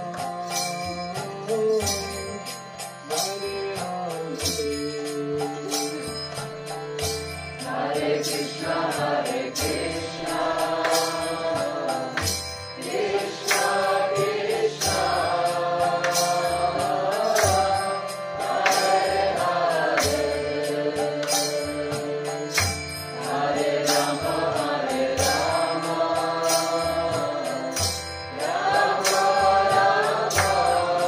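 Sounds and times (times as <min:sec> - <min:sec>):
drum and cymbal beat: 0:00.0 - 0:31.0
steady drone: 0:04.4 - 0:31.0.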